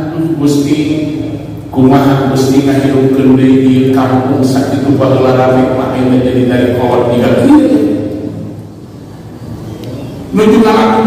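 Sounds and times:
man's voice echoing: 0.0 - 8.7, 10.2 - 11.0
low steady background rumble: 0.0 - 11.0.

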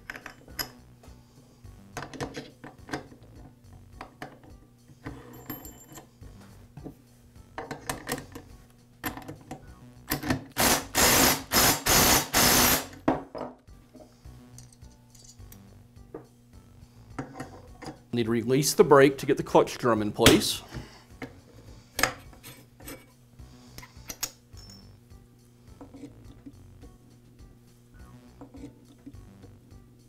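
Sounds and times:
metal parts clinking: 0.0 - 0.9, 5.0 - 6.1, 14.5 - 15.6, 23.9 - 25.0
impact driver hammering: 10.6 - 12.9.

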